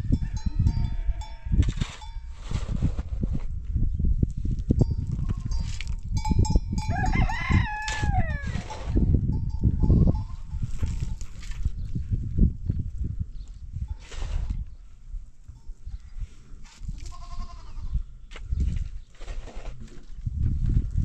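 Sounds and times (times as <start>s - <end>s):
shovel digging into gravelly soil: 1.6s - 3.4s, 14.0s - 14.6s, 19.1s - 20.1s
rooster crowing: 6.9s - 8.6s
goat bleating: 17.1s - 18.0s.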